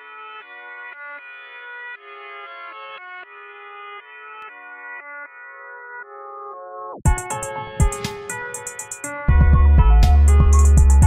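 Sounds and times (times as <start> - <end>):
dark trap beat chords: 7.1 - 11.0.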